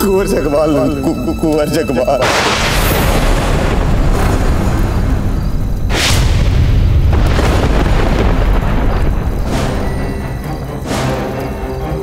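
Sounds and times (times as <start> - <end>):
man's voice: 0.0 - 2.4
musket blast with rumbling tail: 2.2 - 9.8.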